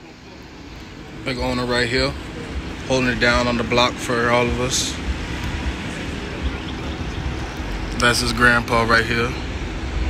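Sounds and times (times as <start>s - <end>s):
parking lot low rumble: 0.0s - 10.0s.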